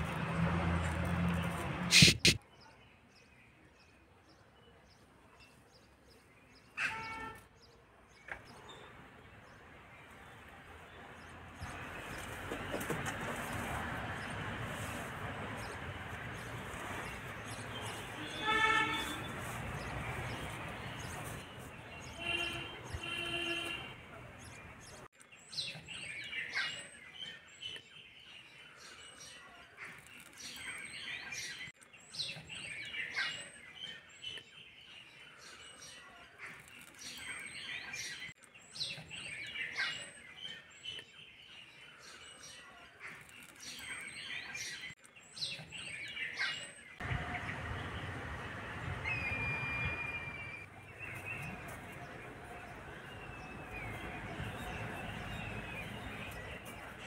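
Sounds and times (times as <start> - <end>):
small birds chirping: 1.2 - 57.0
short whistle: 49.2 - 50.6.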